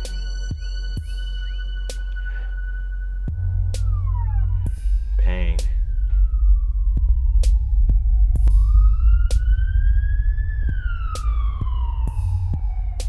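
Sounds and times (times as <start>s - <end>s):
wailing siren: 0.0s - 13.0s
loud low drone: 3.3s - 13.0s.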